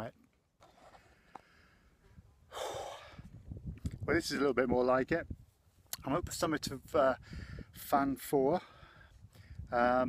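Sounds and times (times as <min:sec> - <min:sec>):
low outdoor hush: 0:00.8 - 0:04.2
heavy breath out: 0:00.9 - 0:03.4.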